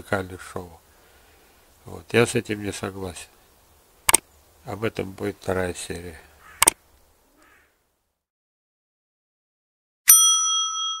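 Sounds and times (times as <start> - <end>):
bright bell ding: 10.1 - 11.0.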